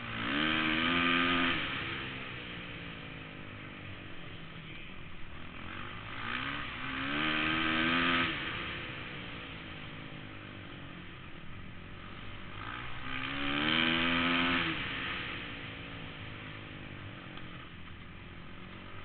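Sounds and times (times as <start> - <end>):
motorcycle engine revving: 0.0 - 19.0.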